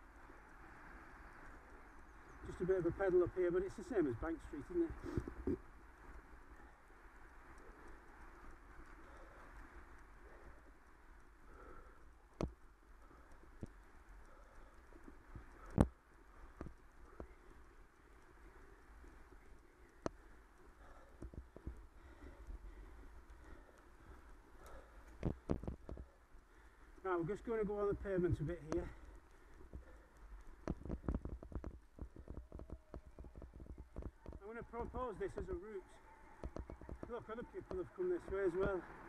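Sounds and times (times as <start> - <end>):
bicycle low rumble: 0.0 - 39.0.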